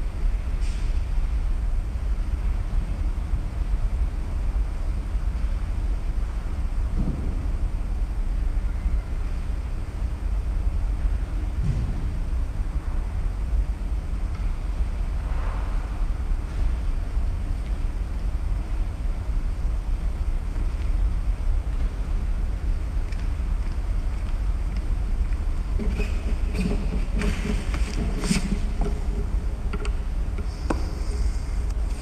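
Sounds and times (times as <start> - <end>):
low background rumble: 0.0 - 32.0.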